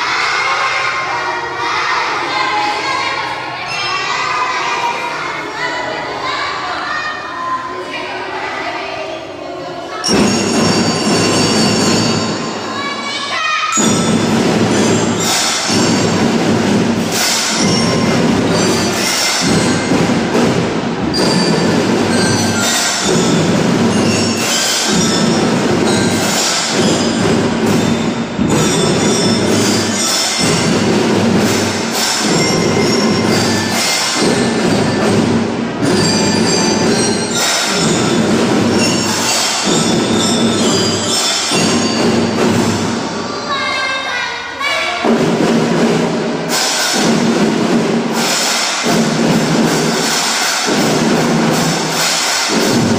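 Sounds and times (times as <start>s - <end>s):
mallet bar instruments ringing: 10.0s - 12.8s, 13.7s - 43.1s
drums playing march rhythm: 10.0s - 13.2s, 13.8s - 43.5s, 45.0s - 52.9s.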